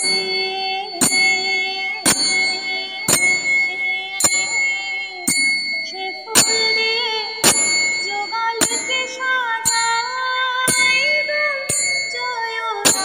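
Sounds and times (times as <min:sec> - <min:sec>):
metal bell struck: 0:00.0 - 0:13.0.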